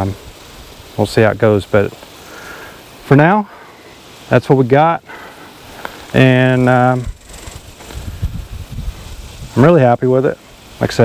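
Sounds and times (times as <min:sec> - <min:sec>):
wind buffeting microphone: 0:06.2 - 0:09.7.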